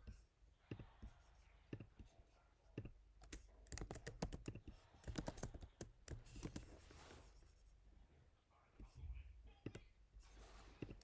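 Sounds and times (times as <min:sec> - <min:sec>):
computer keyboard typing: 0:02.8 - 0:06.8.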